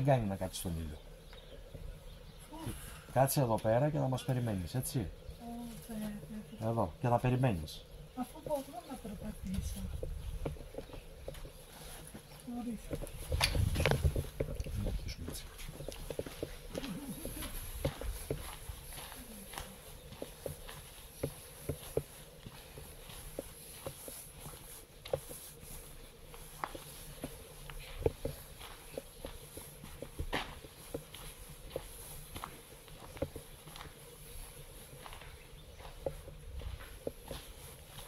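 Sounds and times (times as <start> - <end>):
footsteps on gravelly dirt: 3.1 - 38.0.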